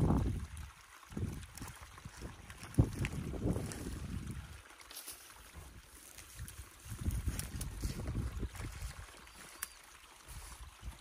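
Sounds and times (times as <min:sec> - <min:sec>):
wind buffeting microphone: 0:00.0 - 0:04.6, 0:05.6 - 0:09.1
handling sticks and mud: 0:01.4 - 0:11.0.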